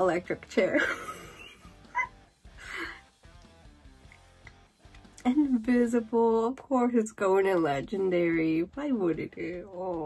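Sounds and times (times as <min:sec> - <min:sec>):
woman's stifled laughter: 0:00.8 - 0:03.0.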